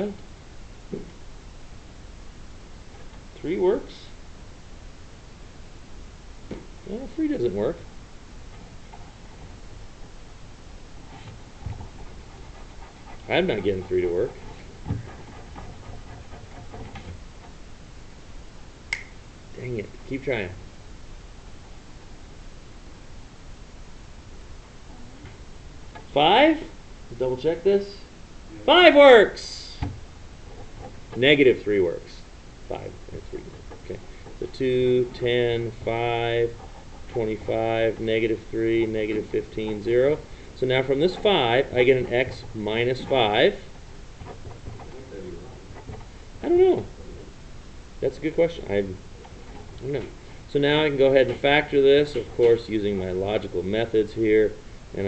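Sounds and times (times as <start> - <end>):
low room noise: 0.0 - 55.0.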